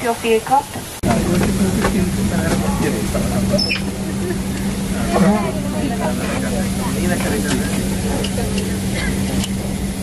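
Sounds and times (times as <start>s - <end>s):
passenger chatter: 0.0s - 10.0s
aircraft cabin hum: 1.0s - 10.0s.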